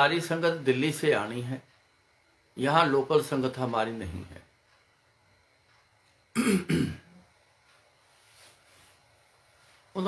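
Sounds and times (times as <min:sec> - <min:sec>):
man clearing his throat: 0:06.4 - 0:07.1.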